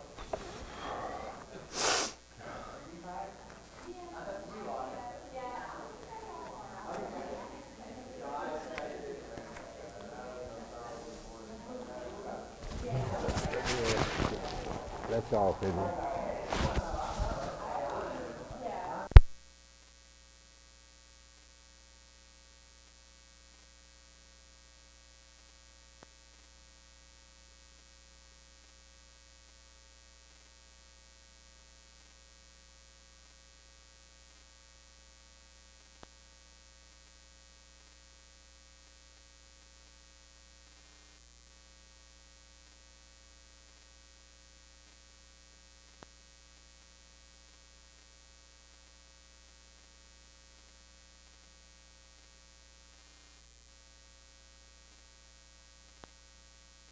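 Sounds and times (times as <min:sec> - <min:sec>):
low electrical hum: 0:00.0 - 0:56.9.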